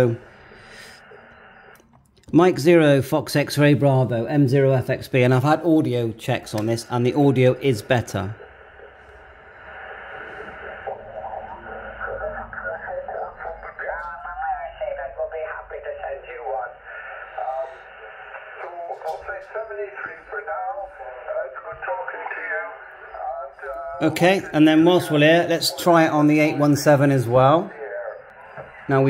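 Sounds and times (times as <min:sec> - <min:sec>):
radio noise: 0:00.0 - 0:01.8, 0:02.5 - 0:29.0
man speaking over radio: 0:03.5 - 0:08.4, 0:10.6 - 0:29.0.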